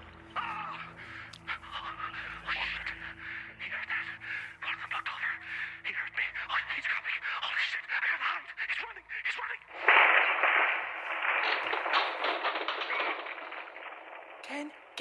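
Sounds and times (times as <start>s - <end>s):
voice over telephone line: 0.4s - 9.6s
harsh crackling phone noise: 0.4s - 15.0s.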